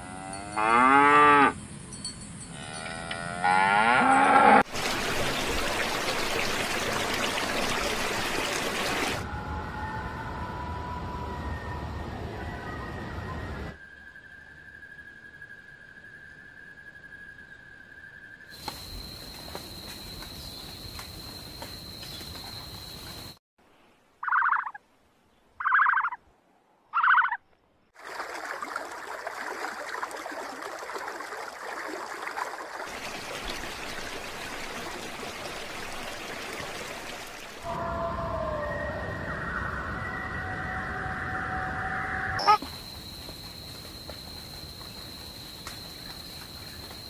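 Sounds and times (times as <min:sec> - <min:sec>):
outdoor natural ambience hiss: 0:00.0 - 0:47.0
steady tonal calls: 0:24.2 - 0:24.8, 0:25.6 - 0:26.2.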